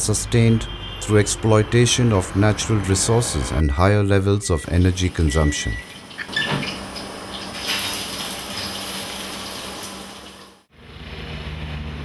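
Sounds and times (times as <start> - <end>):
road traffic rumble: 0.0 - 3.7, 10.7 - 12.0.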